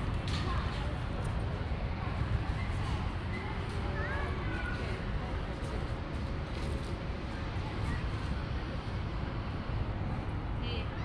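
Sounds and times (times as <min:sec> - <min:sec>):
traffic rumble: 0:00.0 - 0:11.0
wind: 0:00.0 - 0:11.0.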